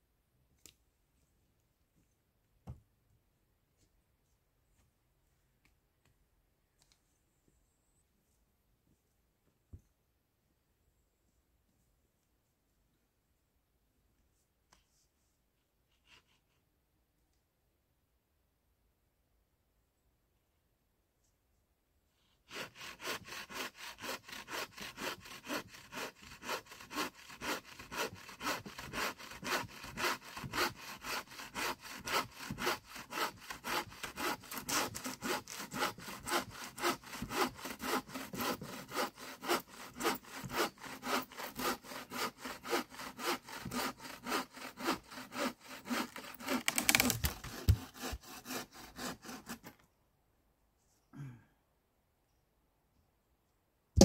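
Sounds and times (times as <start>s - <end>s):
hand saw cutting log: 22.5s - 49.8s.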